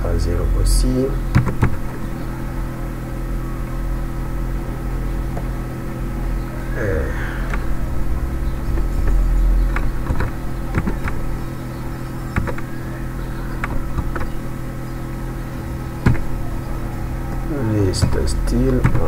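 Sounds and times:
low buzzing hum: 0:00.0 - 0:19.0.

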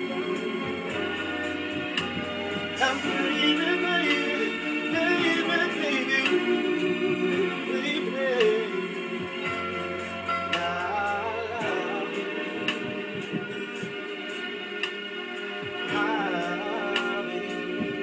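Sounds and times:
slow soul ballad backing track: 0:00.0 - 0:18.0.

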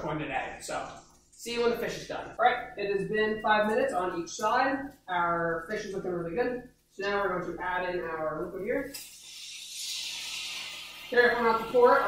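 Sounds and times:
sauce sizzling in hot pan: 0:08.8 - 0:12.0.

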